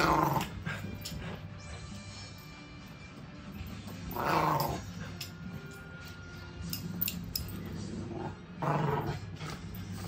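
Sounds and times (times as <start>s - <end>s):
dog growling: 0.0s - 1.3s, 4.1s - 5.2s, 7.7s - 10.0s.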